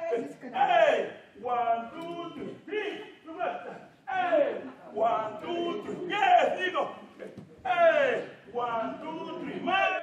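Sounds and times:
man calling out: 0.0 - 10.0.

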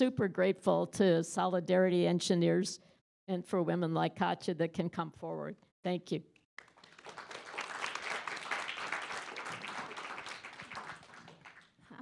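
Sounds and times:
audience applause: 6.6 - 11.7.

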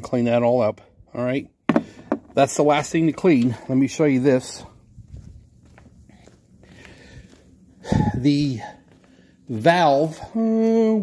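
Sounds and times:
footsteps on concrete: 1.7 - 11.0.

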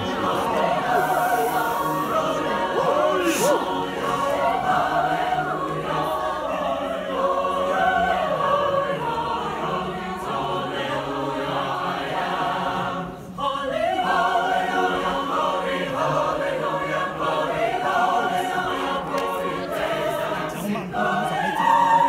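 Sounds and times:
mixed choir singing in harmony: 0.0 - 22.0.

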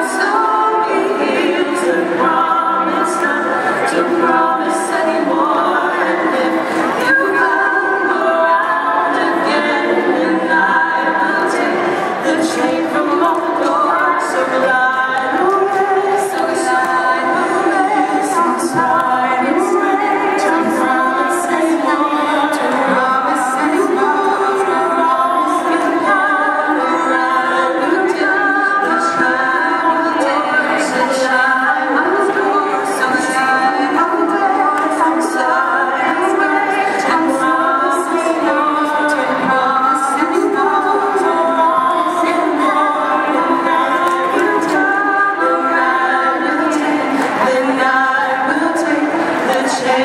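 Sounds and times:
female vocal group singing: 0.0 - 50.0.

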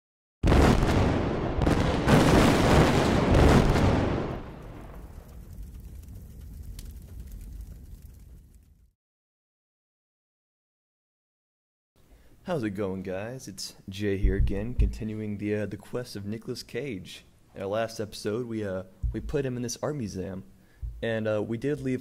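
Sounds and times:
explosion-like hits: 0.4 - 5.2.

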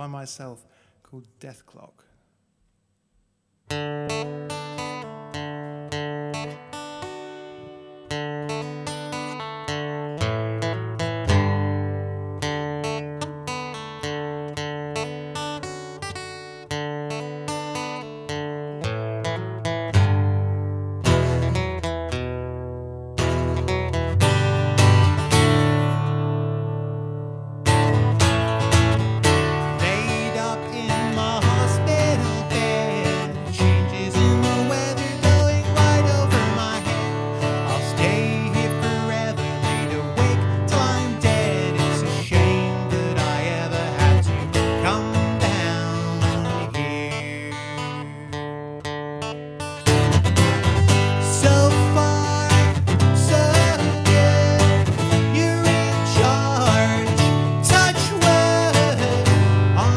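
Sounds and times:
fingerpicked acoustic guitar: 3.7 - 59.9
man singing: 29.6 - 48.8, 50.9 - 59.9.

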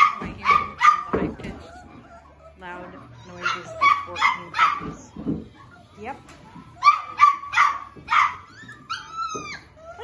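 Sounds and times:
puppies yipping: 0.0 - 10.0
puppy wavering yelp: 0.0 - 10.0.

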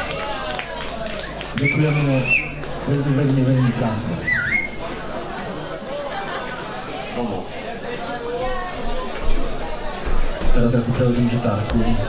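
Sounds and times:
crowd chatter: 0.0 - 12.0
human whistle: 1.6 - 2.6, 4.2 - 4.8.

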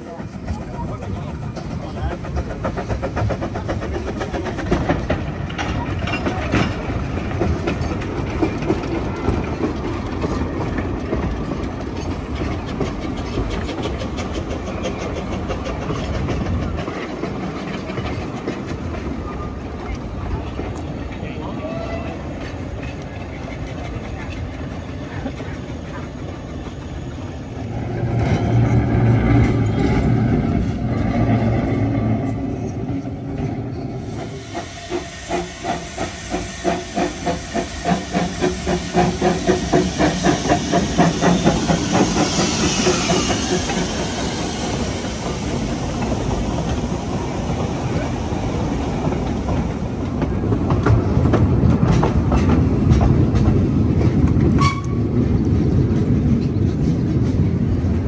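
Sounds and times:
steam locomotive exhaust chuffs: 0.0 - 19.0, 33.5 - 58.0
train rumbling: 0.0 - 58.0
steam hissing: 33.9 - 50.5.

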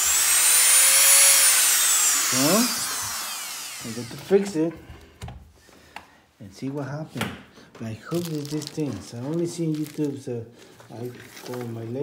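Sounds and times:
rotary tool motor whining: 0.0 - 4.3.

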